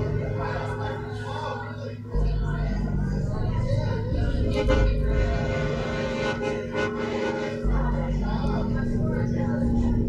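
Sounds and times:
deep low rumble: 0.0s - 6.7s, 7.6s - 10.0s
sustained accordion tones: 0.0s - 10.0s.

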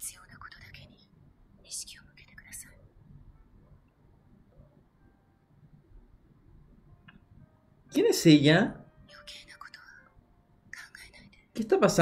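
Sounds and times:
person whispering: 0.0s - 2.9s, 9.1s - 10.1s, 10.8s - 11.7s.

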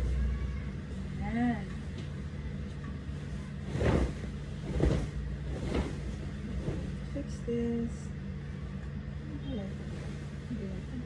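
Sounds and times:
steady low hum: 0.0s - 11.0s
fabric whooshes: 3.6s - 7.1s, 9.7s - 10.6s.

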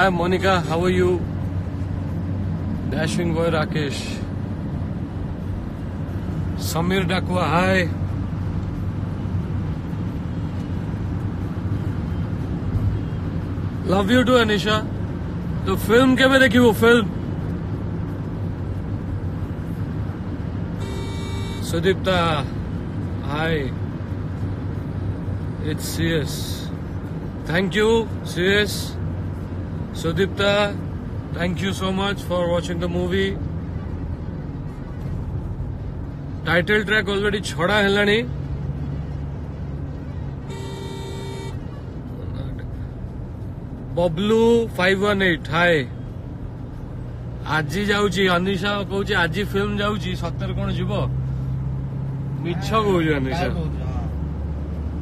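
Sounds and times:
vehicle rumble in motion: 0.0s - 55.0s
vehicle horn honk: 20.8s - 21.8s, 40.4s - 41.8s.

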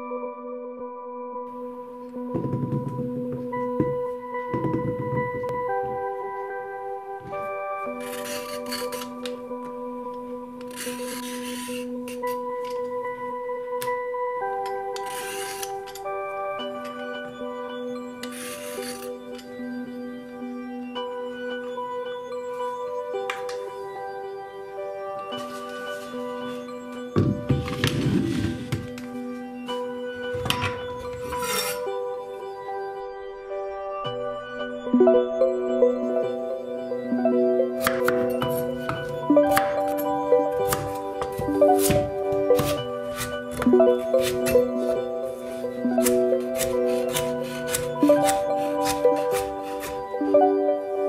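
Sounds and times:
soft melodic background music: 0.0s - 51.0s
knife chopping on wooden board: 40.6s - 44.5s, 46.0s - 50.0s.

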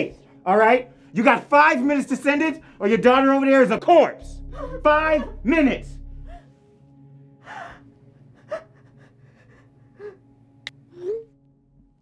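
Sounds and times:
woman gasping and whimpering: 4.4s - 5.4s, 7.4s - 11.4s.

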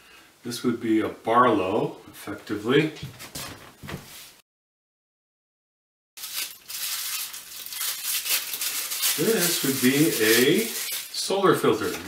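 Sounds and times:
wrapping crinkling and rustling: 6.2s - 12.0s.

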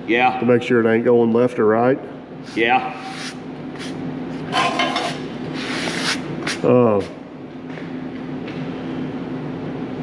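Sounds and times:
low shop hum: 0.0s - 10.0s
metal hub scraping on steel: 4.4s - 5.4s.

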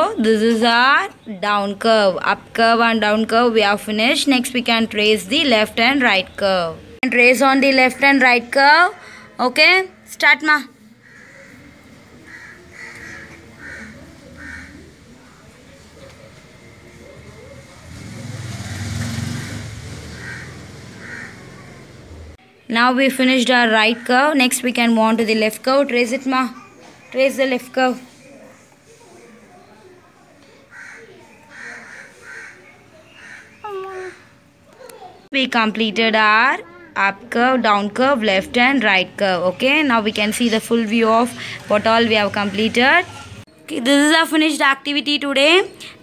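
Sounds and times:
faint murmured speech: 6.8s - 22.7s, 25.6s - 35.3s
bird calling: 11.0s - 15.1s, 19.4s - 21.9s, 30.7s - 34.4s.

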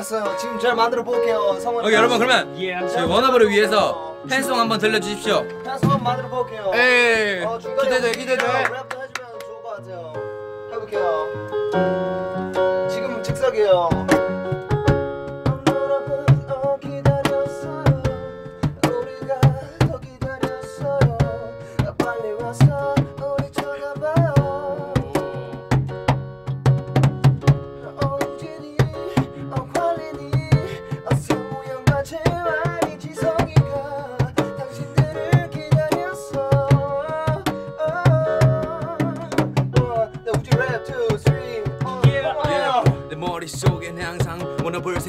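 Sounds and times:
electronic keyboard tune: 0.0s - 45.0s
drum machine beat: 3.0s - 8.9s, 12.6s - 45.0s.

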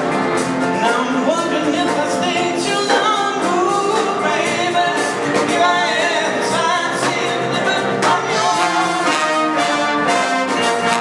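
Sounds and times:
big band playing: 0.0s - 11.0s.

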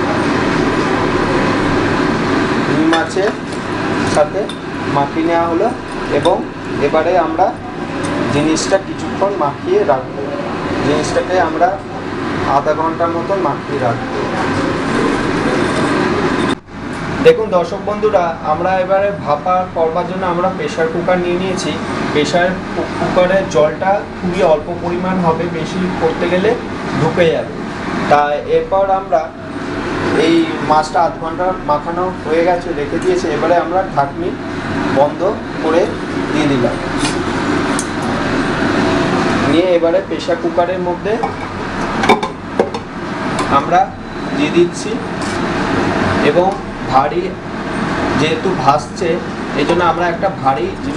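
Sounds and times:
steady loud background noise: 0.0s - 50.9s.

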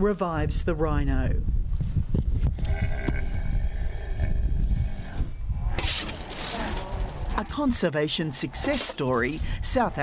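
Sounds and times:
steady low rumble: 0.6s - 10.0s.

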